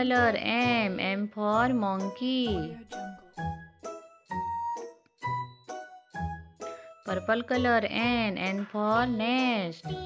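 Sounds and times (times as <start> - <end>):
chime-like children's tune: 0.2 - 10.0.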